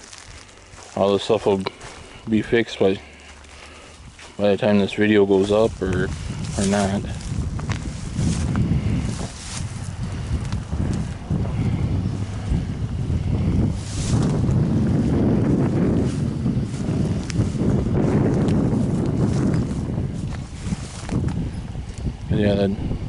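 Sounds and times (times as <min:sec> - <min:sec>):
faint clicks and rustles: 0:00.0 - 0:12.5
wind buffeting microphone: 0:00.0 - 0:23.0.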